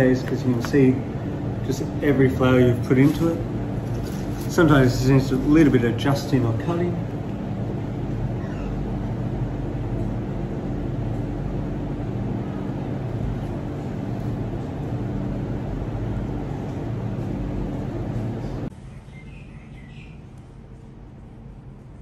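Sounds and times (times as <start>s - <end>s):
room hum low drone: 0.0s - 22.0s.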